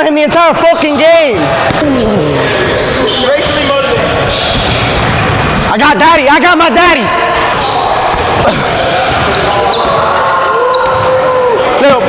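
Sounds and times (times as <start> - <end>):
players' voices: 0.0 - 12.0
basketball bouncing on gym floor: 10.7 - 11.1.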